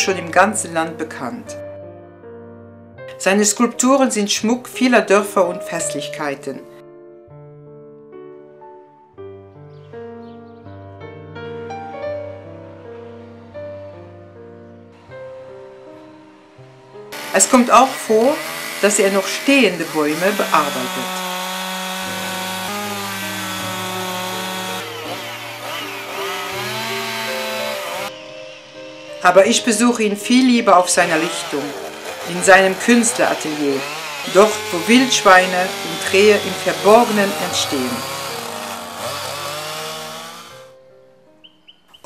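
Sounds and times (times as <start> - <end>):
chainsaw cutting wood: 17.1 - 28.2, 30.6 - 40.7.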